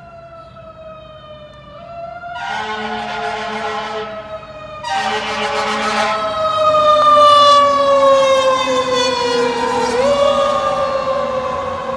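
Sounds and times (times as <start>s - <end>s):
fire engine siren wailing: 0.0s - 11.9s.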